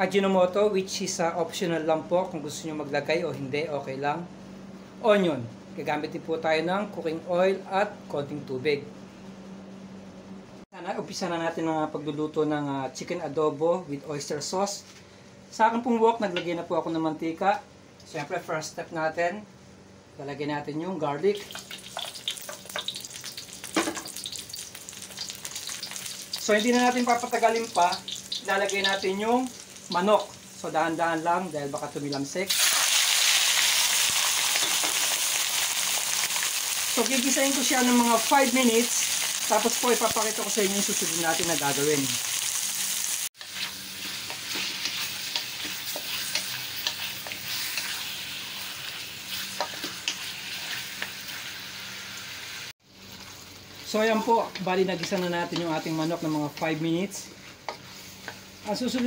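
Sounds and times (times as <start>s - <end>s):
garlic sizzling in hot oil: 21.3s - 59.0s
wooden spatula stirring in wok: 43.4s - 51.2s, 53.1s - 59.0s
wooden spatula scraping a pan: 53.8s - 59.0s.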